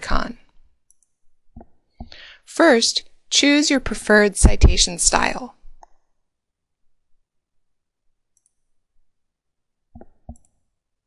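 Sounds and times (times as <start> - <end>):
computer mouse clicks: 0.8 - 2.2, 5.7 - 6.1, 8.3 - 8.7, 10.0 - 10.6.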